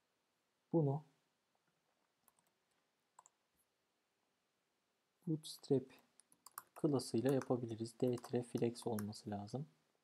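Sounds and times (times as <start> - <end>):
faint clicks: 3.2 - 3.4.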